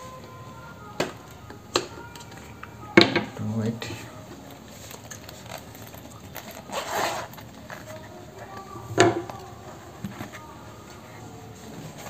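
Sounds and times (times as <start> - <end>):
plastic scraping on helmet: 4.4 - 12.0.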